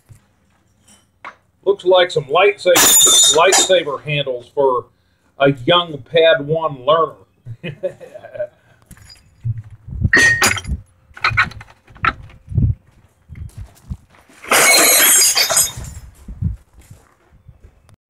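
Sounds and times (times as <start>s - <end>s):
metal parts knocking: 8.9s - 12.5s
steel parts poured rattling crash: 14.4s - 16.0s.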